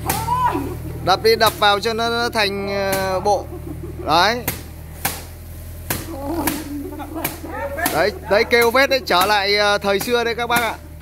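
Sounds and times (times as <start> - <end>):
rice stalks slapped on stone: 4.4 - 9.4.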